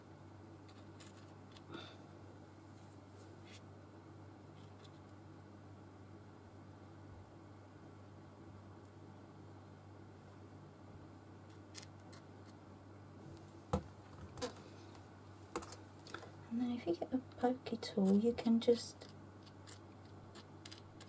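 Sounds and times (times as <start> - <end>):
steady room hum: 0.0 - 21.0.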